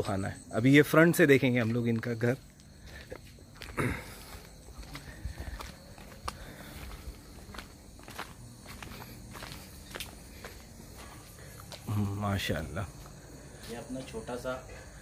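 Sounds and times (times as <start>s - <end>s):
footsteps on garden path: 0.0s - 15.0s.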